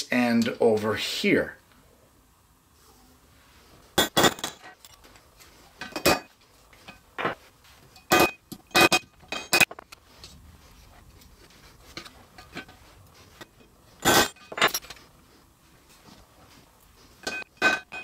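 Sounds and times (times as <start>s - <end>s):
hammer striking metal rivets: 4.0s - 5.0s, 8.0s - 9.8s, 14.0s - 14.9s.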